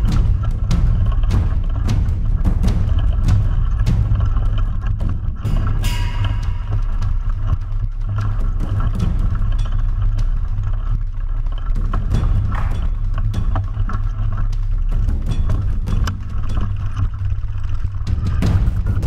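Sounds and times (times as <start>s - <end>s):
bike tyre and frame rumble: 0.0s - 19.0s
chain clacking and rattling: 0.0s - 19.0s.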